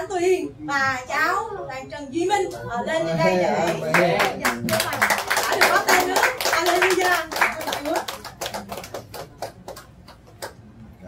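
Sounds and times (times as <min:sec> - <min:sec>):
people clapping: 0:03.6 - 0:10.7.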